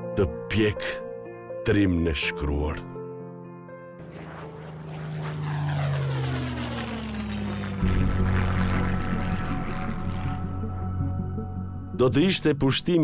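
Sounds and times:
steady low engine drone: 4.0 - 12.9
propeller aircraft engines droning: 4.0 - 13.0.

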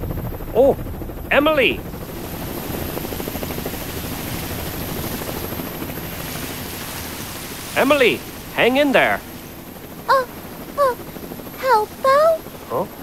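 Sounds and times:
helicopter rotor chopping: 0.0 - 13.0.

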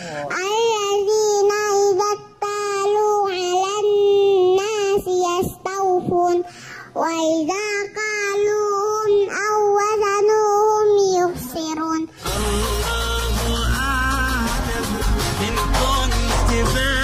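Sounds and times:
girl chanting melodically: 0.3 - 12.2
background music with steady bass: 12.2 - 17.0.

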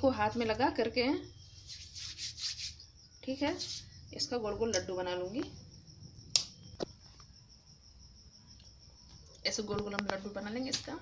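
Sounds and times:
hands rubbing together: 1.6 - 2.9.

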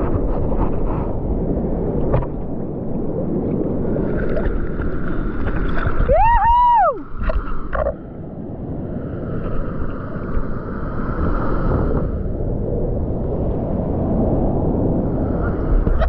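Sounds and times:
sea water sloshing and rushing: 0.0 - 16.0.

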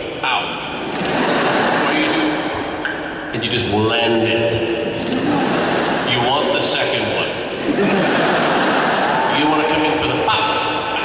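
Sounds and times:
audience applauding: 7.6 - 9.6.

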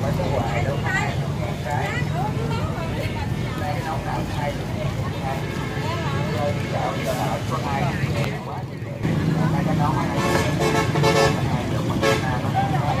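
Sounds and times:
crowd voices: 0.0 - 13.0
horn-like tones: 10.1 - 12.4.

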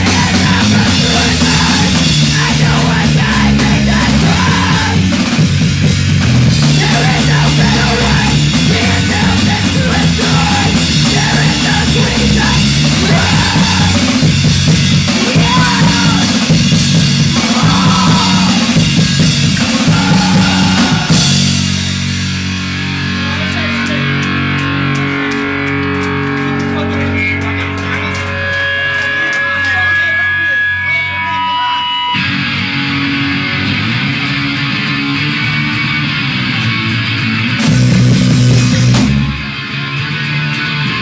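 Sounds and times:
punk band playing loud: 0.0 - 41.0
electric guitar notes ringing: 20.4 - 37.3.

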